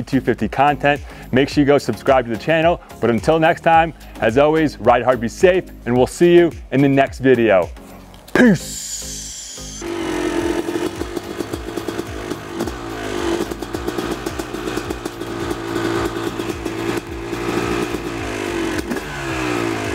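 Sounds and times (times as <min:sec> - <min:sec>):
dirt bike engine revving: 0:08.4 - 0:19.9.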